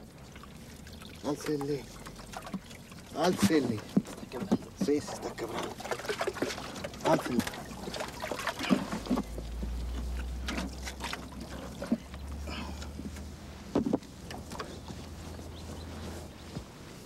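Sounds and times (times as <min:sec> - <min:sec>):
knocks and scrapes of concrete: 0:03.2 - 0:16.8
low steady rumble: 0:07.6 - 0:17.0.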